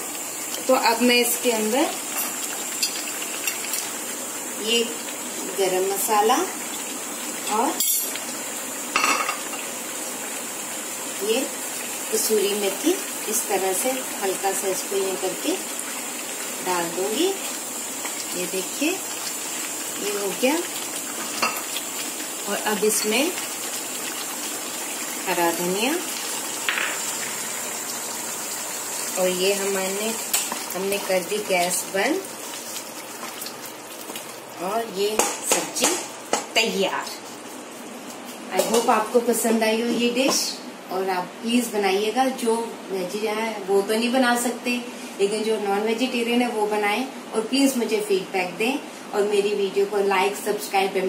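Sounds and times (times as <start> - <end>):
gravy sizzling in a pan: 0.0 - 40.5.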